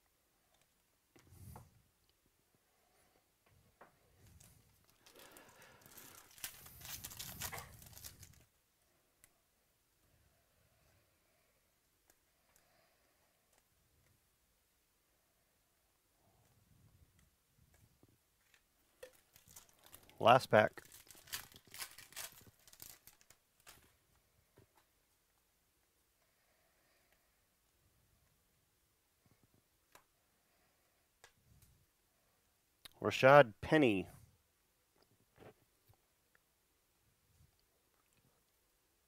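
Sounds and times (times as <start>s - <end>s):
foil wrapper tearing and crinkling: 4.8s - 8.5s, 19.0s - 23.9s.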